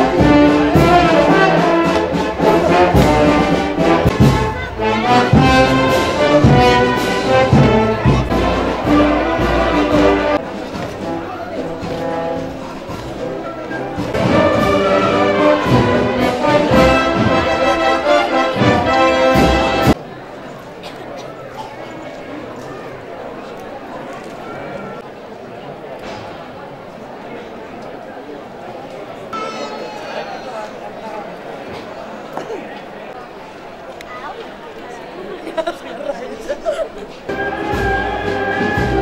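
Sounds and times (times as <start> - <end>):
brass and drum band marching: 0.0 - 20.0, 37.2 - 39.0.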